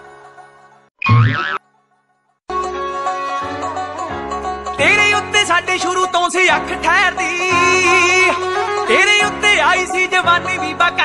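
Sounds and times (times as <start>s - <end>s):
swooping comic sound effect: 1.0s - 1.6s
folk-style background music: 1.6s - 11.0s.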